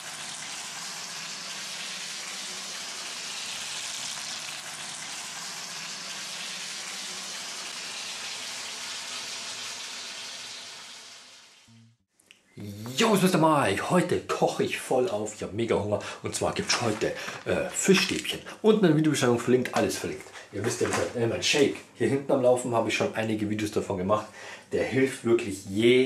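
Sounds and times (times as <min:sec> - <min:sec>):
fish sticks sizzling in oil: 0:00.0 - 0:11.8.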